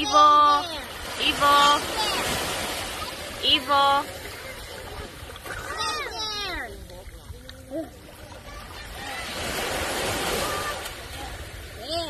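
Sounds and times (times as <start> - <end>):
wave breaking on beach: 0.0 - 6.9, 7.9 - 12.0.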